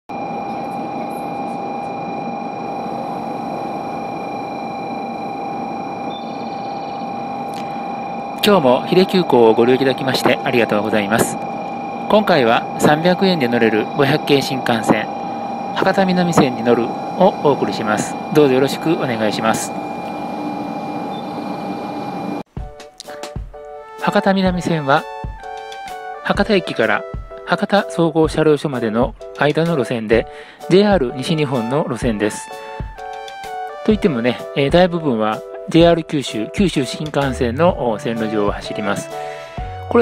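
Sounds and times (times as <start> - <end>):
steady high-pitched hum: 0.1 - 22.5
train rolling into station: 0.1 - 22.5.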